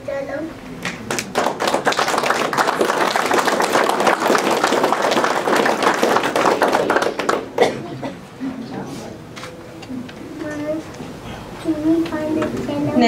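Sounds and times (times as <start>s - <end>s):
audience applauding: 0.8s - 8.0s.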